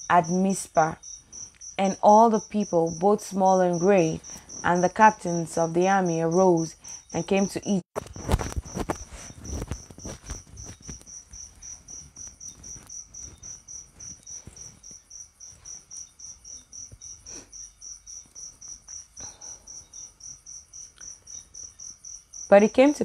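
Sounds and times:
cricket chirping: 0:00.0 - 0:23.0.

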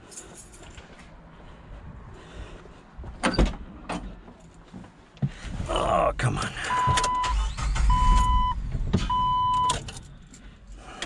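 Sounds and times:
electronic warning chimes: 0:06.7 - 0:09.8.

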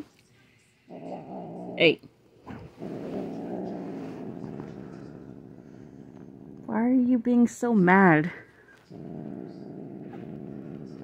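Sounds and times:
cat growling: 0:00.9 - 0:06.7, 0:08.9 - 0:11.0.

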